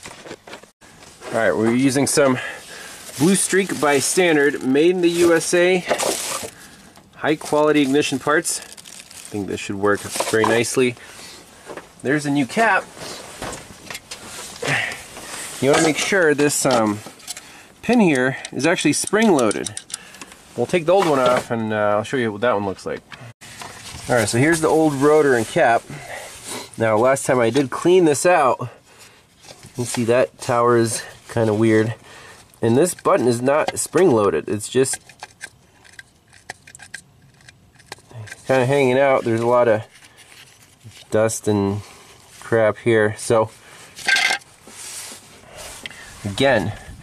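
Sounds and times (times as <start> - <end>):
packaging rustling: 7.5 - 10.8.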